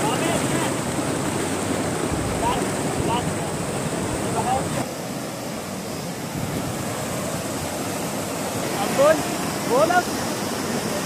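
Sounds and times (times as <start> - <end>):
stream rushing over rocks: 0.0 - 11.0.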